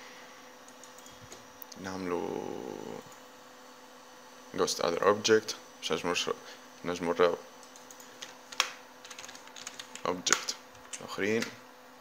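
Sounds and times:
person speaking: 0:01.6 - 0:03.1, 0:09.8 - 0:11.6
computer keyboard clicks: 0:07.6 - 0:11.6.

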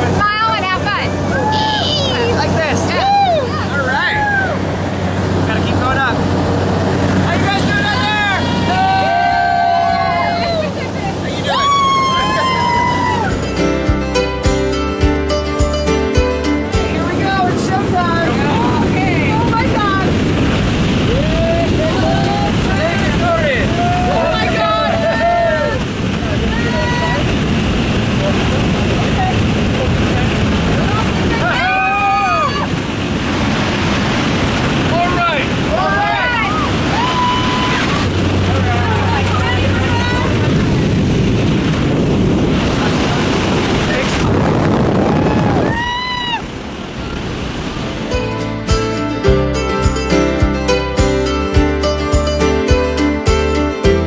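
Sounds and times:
aircraft engine and wind noise: 0:00.0 - 0:13.5, 0:16.8 - 0:48.6.

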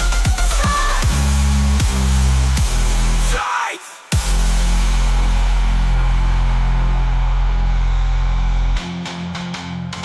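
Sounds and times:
dubstep music: 0:00.0 - 0:10.0.

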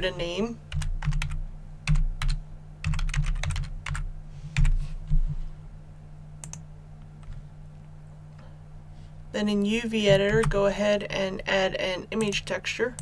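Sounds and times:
low electrical hum: 0:00.0 - 0:13.0
typing on keyboard: 0:00.7 - 0:04.0.

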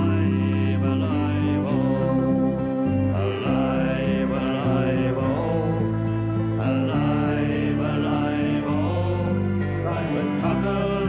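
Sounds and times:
men singing together: 0:00.0 - 0:02.5, 0:03.2 - 0:11.0
acoustic guitars: 0:00.0 - 0:11.0.

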